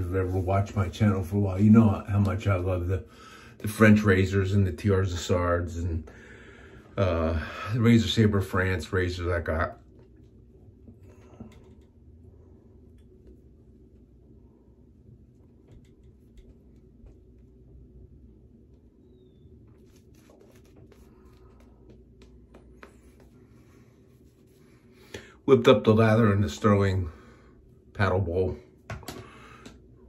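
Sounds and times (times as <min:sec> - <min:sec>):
shaving brush swishing on stubble: 0:19.7 - 0:25.0.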